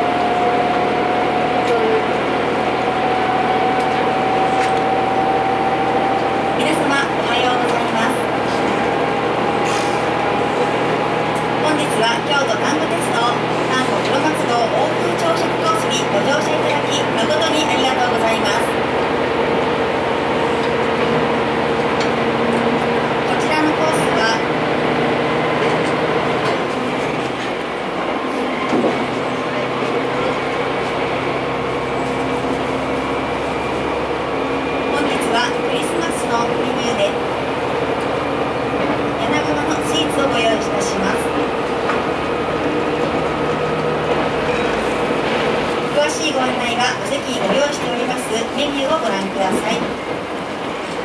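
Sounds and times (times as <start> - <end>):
diesel railcar engine drone: 0.0 - 51.0
train cabin running noise: 0.0 - 51.0.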